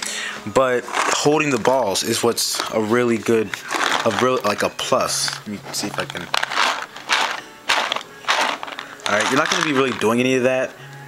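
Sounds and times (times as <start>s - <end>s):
paintballs rattling in hopper: 0.6s - 10.4s.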